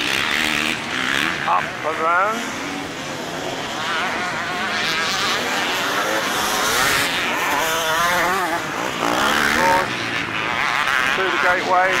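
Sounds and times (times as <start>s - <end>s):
motorcycle engines revving: 0.0s - 12.0s.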